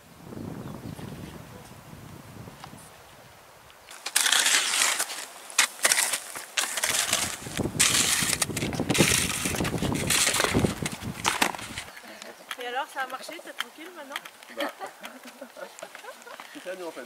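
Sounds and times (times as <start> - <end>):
footsteps crunching in snow: 3.8 - 12.0.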